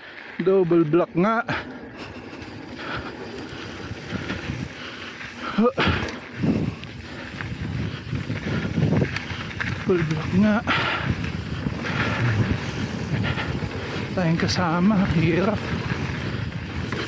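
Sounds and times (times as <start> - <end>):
bike tyres rumbling over dirt: 0.0 - 17.0
wind buffeting microphone: 1.6 - 17.0.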